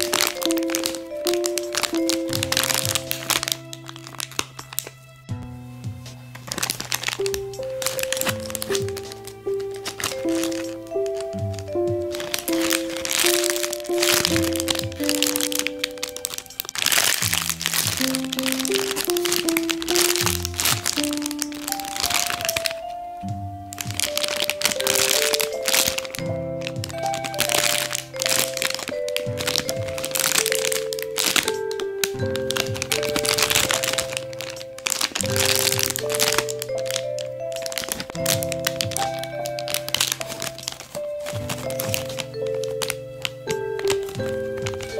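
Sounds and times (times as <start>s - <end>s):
plastic bags crinkling: 0.0s - 5.2s, 6.3s - 44.9s
background music melody: 0.0s - 44.9s.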